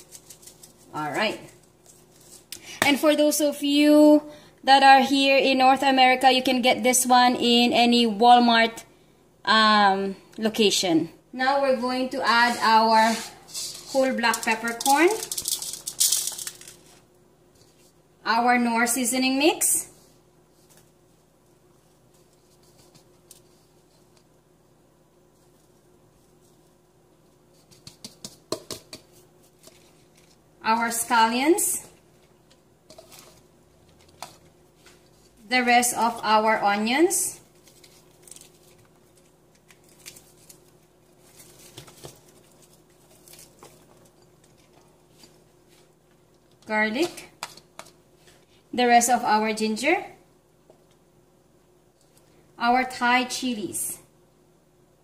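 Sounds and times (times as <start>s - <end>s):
faint steady hum: 0.0s - 55.0s
peppercorns pattering in a pot: 13.7s - 17.0s.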